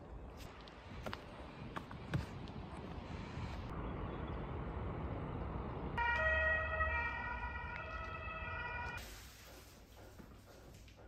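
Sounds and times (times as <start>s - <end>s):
distant siren-like horn chord: 6.0s - 9.0s.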